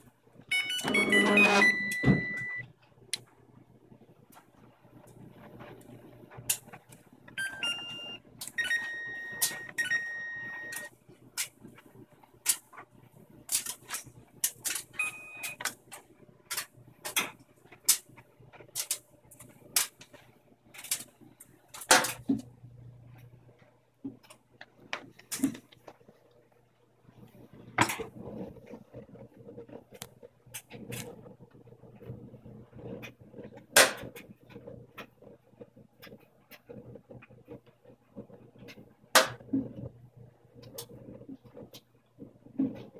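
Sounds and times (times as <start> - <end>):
washing machine hum: 0.0 - 42.9
electronic beeps: 0.5 - 2.6, 7.4 - 10.9, 15.0 - 15.6.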